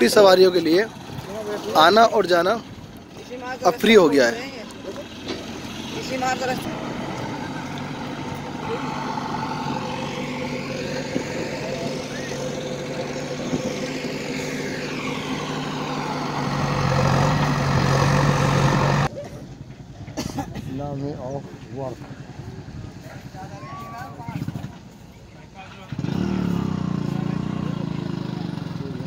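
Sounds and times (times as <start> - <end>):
heavy vehicle engine running: 0.0 - 20.2, 24.2 - 29.0.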